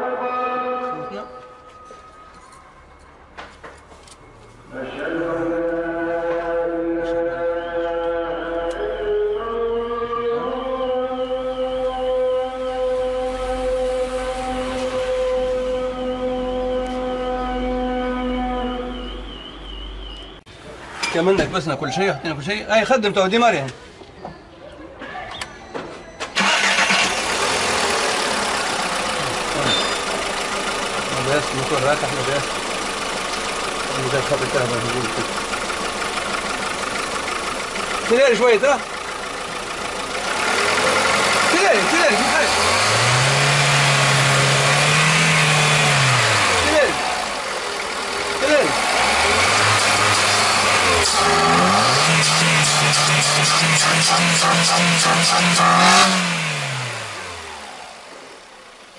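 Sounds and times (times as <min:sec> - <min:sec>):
car engine starting and idling: 0:11.4 - 0:23.8, 0:26.2 - 0:58.9.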